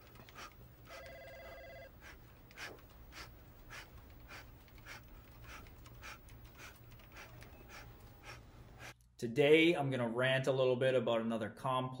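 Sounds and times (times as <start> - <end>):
telephone ringing: 0.9 - 1.9.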